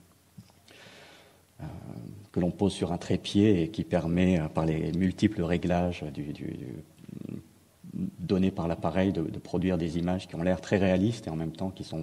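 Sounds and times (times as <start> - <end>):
soft breath: 0.6 - 2.1
man talking: 1.6 - 12.0.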